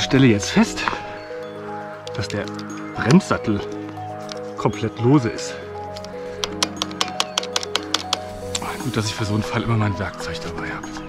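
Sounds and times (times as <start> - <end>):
background music with held notes: 0.0 - 11.0
brake caliper clacking: 5.8 - 8.4.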